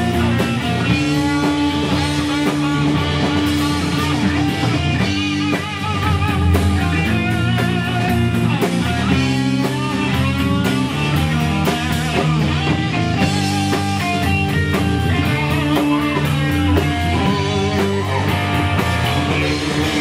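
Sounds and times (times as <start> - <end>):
bass guitar: 0.0 - 20.0
drum kit with cymbal strokes: 0.0 - 20.0
electric guitar lead bending notes: 0.0 - 20.0.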